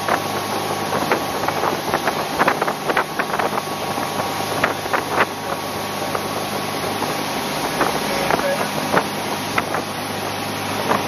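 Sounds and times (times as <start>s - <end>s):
motorboat engine running: 0.0s - 11.0s
water rushing: 0.0s - 11.0s
wind across microphone: 0.0s - 11.0s.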